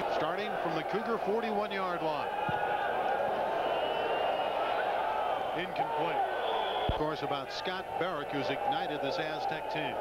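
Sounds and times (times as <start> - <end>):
stadium crowd hum: 0.0 - 10.0.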